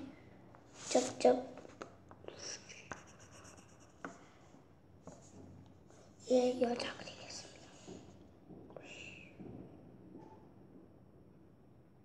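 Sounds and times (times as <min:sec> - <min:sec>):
pencil scratching on paper: 0:02.4 - 0:04.2.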